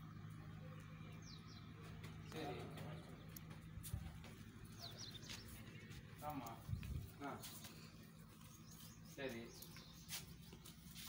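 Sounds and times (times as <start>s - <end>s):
bird chirping: 0.4s - 11.0s.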